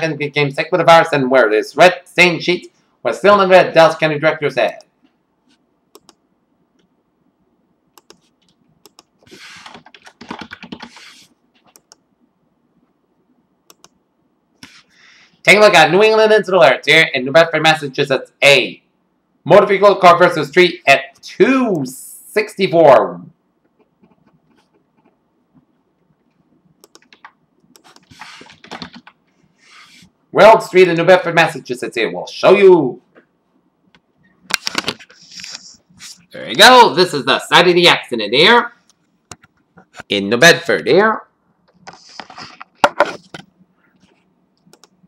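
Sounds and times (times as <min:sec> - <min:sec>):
typing on a computer keyboard: 0:08.0 - 0:12.0, 0:26.8 - 0:29.2.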